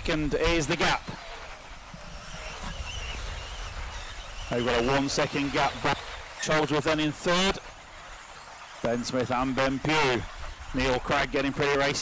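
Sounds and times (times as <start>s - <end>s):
high wavering motor whine: 0.0s - 12.0s.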